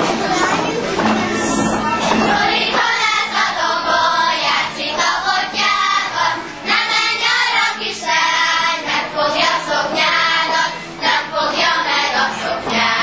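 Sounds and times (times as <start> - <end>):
girls singing a folk song: 0.0 - 13.0.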